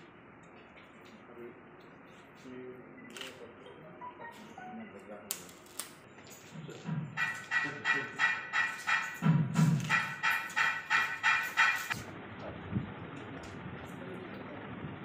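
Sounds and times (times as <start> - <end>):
fast rhythmic ringing: 7.1 - 12.0.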